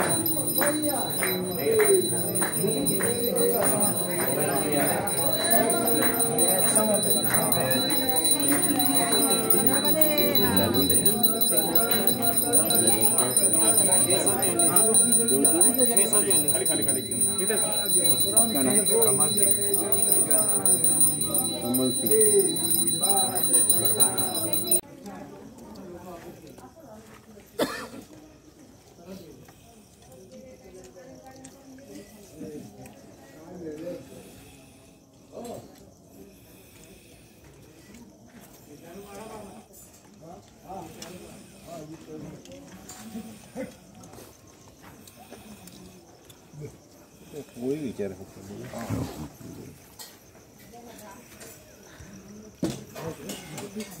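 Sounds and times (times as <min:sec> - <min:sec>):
low voices: 0:00.0 - 0:24.8
metal bells jingling: 0:00.0 - 0:24.8
people talking: 0:00.0 - 0:34.6.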